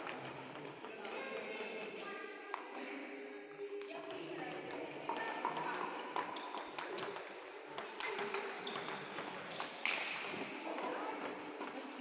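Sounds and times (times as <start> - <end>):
table tennis balls clicking: 3.8 - 12.0.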